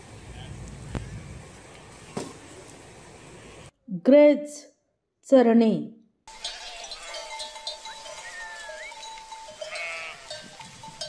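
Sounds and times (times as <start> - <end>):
sheep bleat: 6.3 - 10.6.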